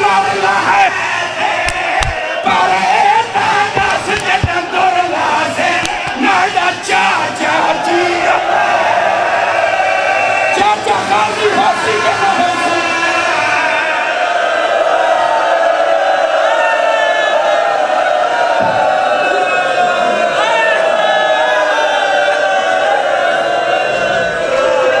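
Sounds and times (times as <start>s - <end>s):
men chanting together: 0.0s - 10.4s.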